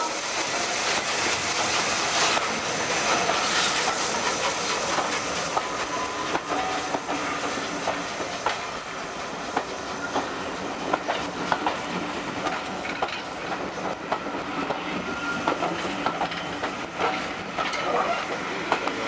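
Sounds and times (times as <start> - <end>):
steam locomotive hissing: 0.0 - 19.0
train wheels clicking over rail joints: 0.4 - 19.0.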